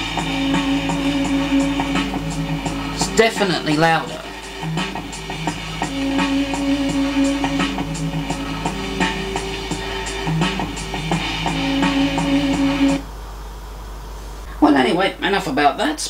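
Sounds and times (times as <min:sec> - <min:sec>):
band music through small speaker: 0:00.0 - 0:13.0
low amplifier hum: 0:00.0 - 0:14.6.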